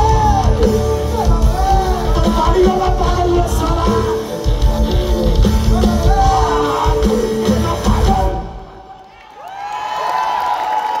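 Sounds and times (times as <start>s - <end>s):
live rock band playing: 0.0s - 8.8s
crowd cheering and whooping: 5.7s - 11.0s.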